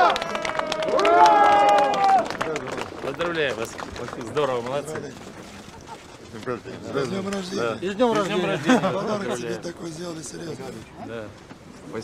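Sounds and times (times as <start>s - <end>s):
men talking: 2.4s - 5.5s, 6.2s - 12.0s.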